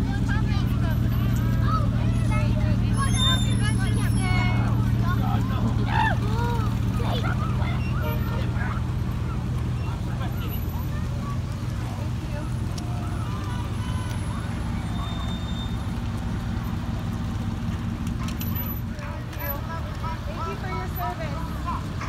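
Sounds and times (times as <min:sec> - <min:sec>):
indistinct voices: 0:00.0 - 0:22.0
vehicle engines humming: 0:00.0 - 0:22.0.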